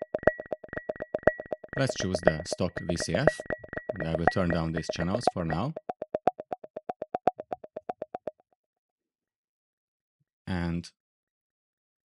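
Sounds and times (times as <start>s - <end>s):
short pitched synth pings: 0.0s - 8.3s.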